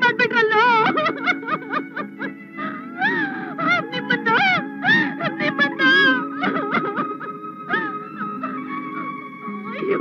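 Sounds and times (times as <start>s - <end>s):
background music drone: 0.0s - 10.0s
woman sobbing and wailing: 0.0s - 10.0s.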